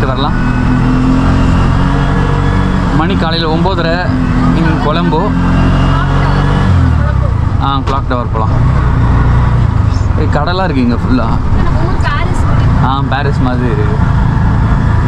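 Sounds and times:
auto-rickshaw engine running: 0.0 - 15.0.

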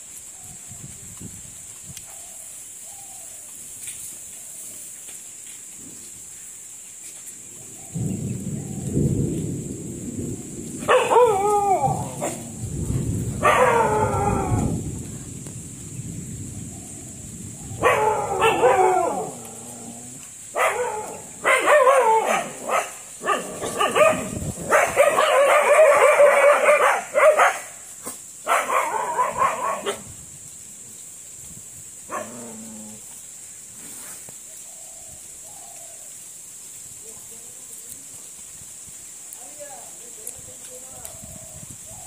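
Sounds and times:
dog barking: 10.8 - 12.4, 13.4 - 14.3, 17.8 - 19.4, 20.5 - 30.1, 32.1 - 32.4.

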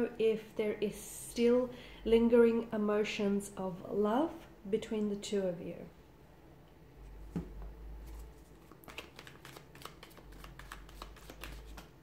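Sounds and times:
cards being shuffled: 8.0 - 12.0.

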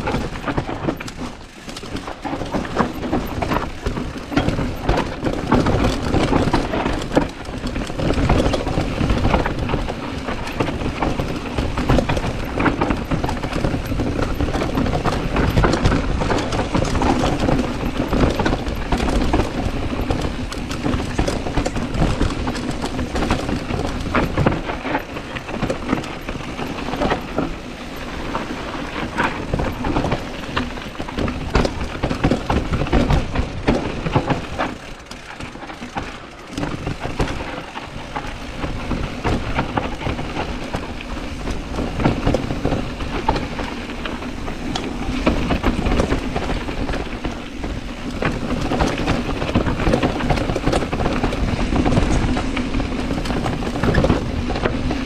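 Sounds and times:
bike chain and frame rattling: 0.0 - 55.0.

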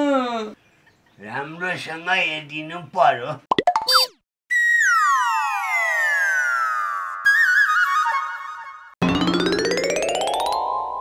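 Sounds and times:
cartoon boing sweeps: 9.0 - 11.0.

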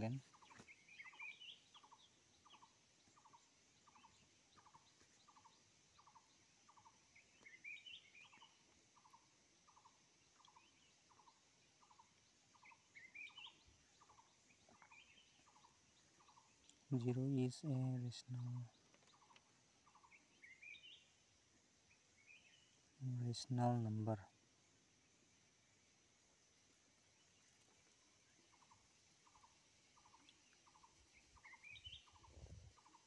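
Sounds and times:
high bird chirps: 0.0 - 17.5, 28.5 - 33.0.

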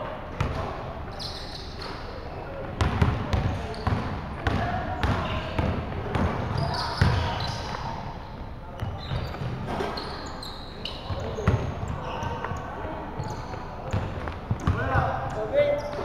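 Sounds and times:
sneaker squeaks: 0.4 - 16.0.

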